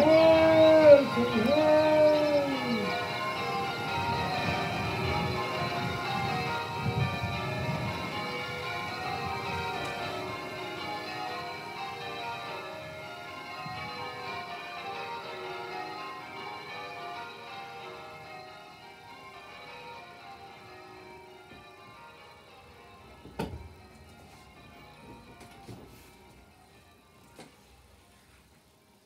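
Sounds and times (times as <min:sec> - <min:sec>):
church bells ringing: 0:00.0 - 0:28.2.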